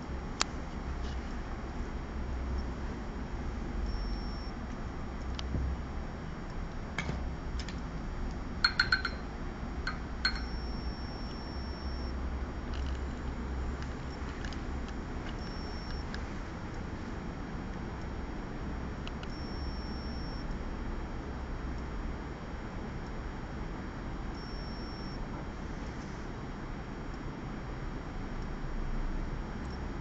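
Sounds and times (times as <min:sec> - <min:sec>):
low room hum: 0:00.0 - 0:30.0
small ringing clinks: 0:08.6 - 0:09.3, 0:09.9 - 0:10.7.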